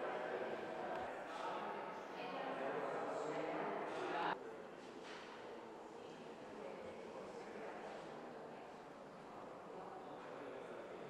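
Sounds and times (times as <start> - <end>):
people chattering: 0.0 - 4.7.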